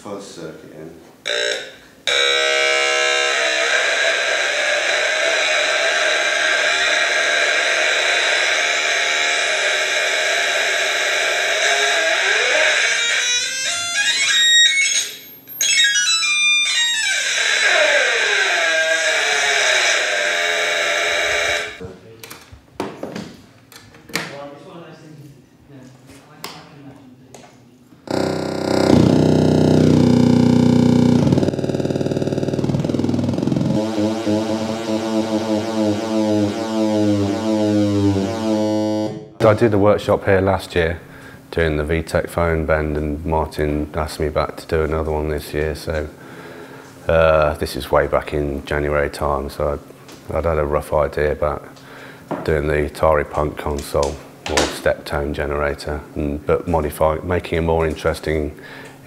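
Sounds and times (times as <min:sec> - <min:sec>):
harsh buzzing synth tone: 0:01.2 - 0:21.8, 0:28.1 - 0:39.3
low buzz stepping between pitches: 0:28.1 - 0:39.2.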